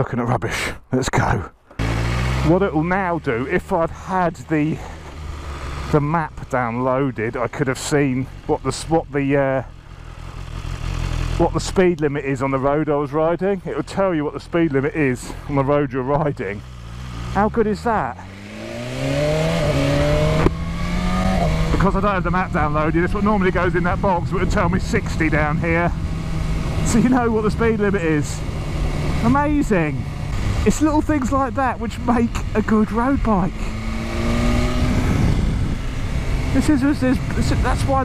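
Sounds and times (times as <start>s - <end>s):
motorcycle engine accelerating: 1.7s - 38.0s
wind noise on microphone: 33.7s - 36.5s.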